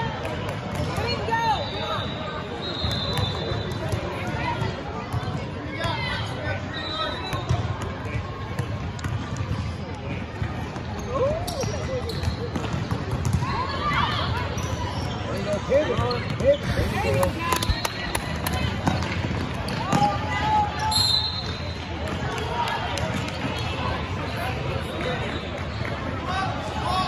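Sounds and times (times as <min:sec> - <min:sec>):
voices of players and spectators: 0:00.0 - 0:27.0.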